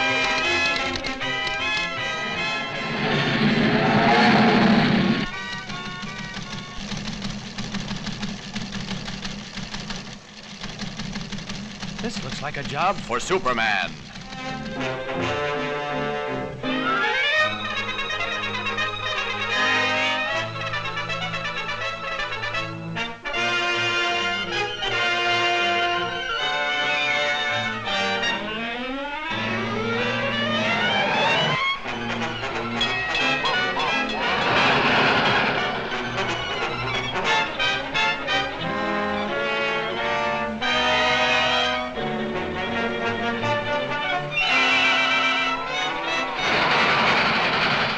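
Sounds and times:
ticker-tape machine clattering: 0.0s - 2.2s, 5.2s - 15.0s, 32.8s - 38.2s, 46.3s - 47.9s
orchestral score: 0.0s - 6.5s, 12.2s - 47.9s
cartoon car engine accelerating: 0.0s - 22.7s, 23.9s - 47.9s.

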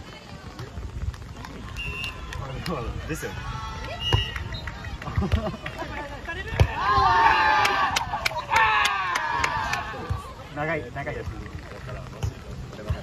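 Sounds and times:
players shouting: 6.0s - 10.5s.

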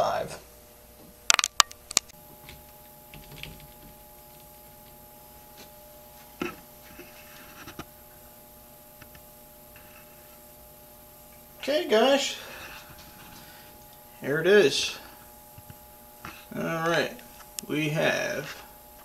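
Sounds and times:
desktop pc humming: 0.0s - 19.0s
sharp clicks: 1.3s - 2.2s.

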